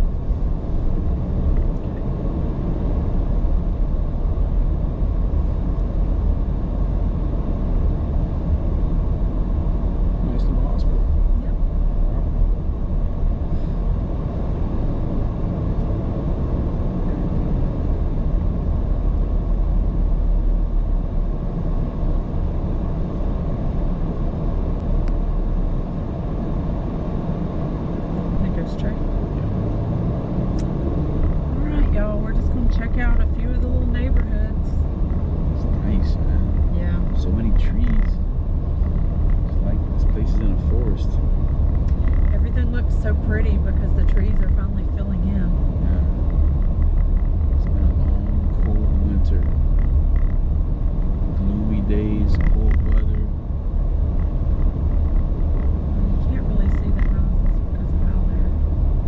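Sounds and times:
car road and engine rumble: 0.0 - 59.0.

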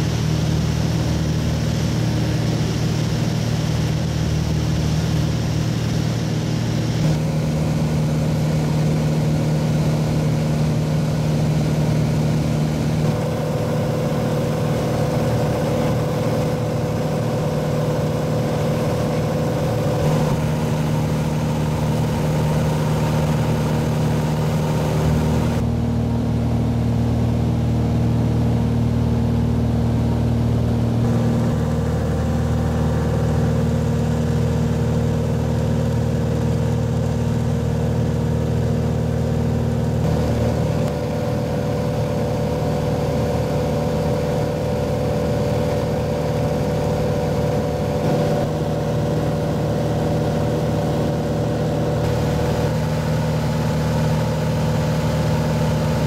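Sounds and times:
propeller aircraft engine drone: 0.0 - 56.0.

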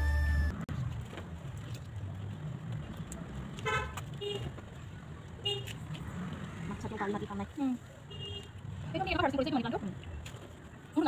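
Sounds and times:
faint outdoor ambience: 0.0 - 11.0
vehicle horn toots: 3.6 - 4.4.

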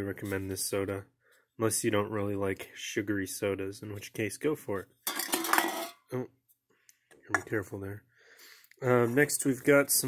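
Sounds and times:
aluminium cans clattering: 5.0 - 6.1.

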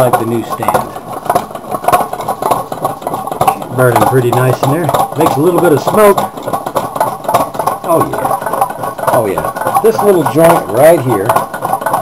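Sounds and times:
stirling engine knocking: 0.0 - 12.0.

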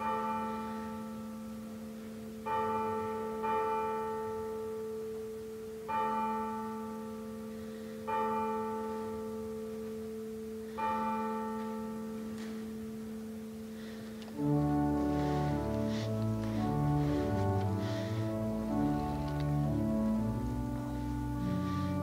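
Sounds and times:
church bell tolling: 0.0 - 22.0.

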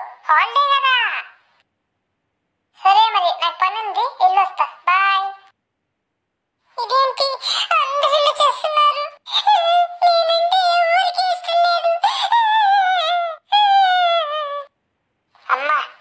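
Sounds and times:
high cartoon voice singing: 6.8 - 14.7.

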